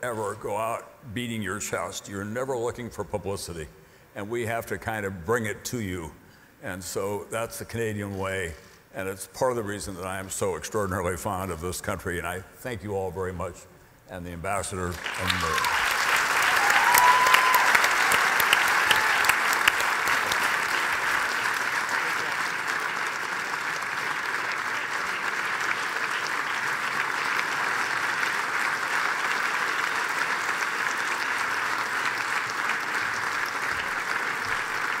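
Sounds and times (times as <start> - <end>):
audience applauding: 14.9 - 35.0.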